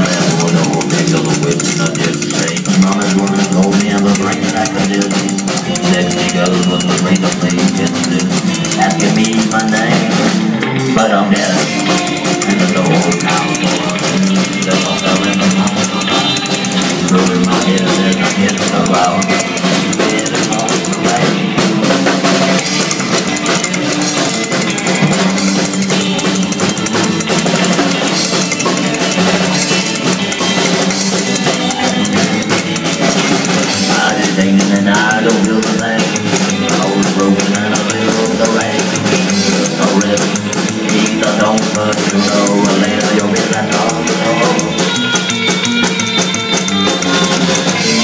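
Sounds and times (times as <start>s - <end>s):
driving bass line: 0.0s - 48.0s
drum kit beat: 0.0s - 48.0s
rockabilly band playing: 0.0s - 48.0s.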